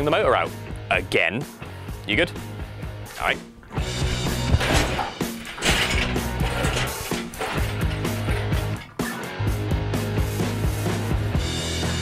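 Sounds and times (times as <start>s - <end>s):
rock music: 2.4s - 12.0s
hydraulic crane clicking and clanking: 3.6s - 9.2s.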